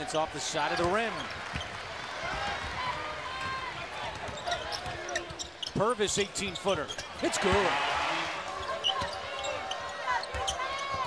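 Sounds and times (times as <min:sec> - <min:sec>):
crowd noise: 0:00.0 - 0:11.0
sneaker squeaks on hardwood: 0:04.2 - 0:05.8, 0:08.8 - 0:11.0.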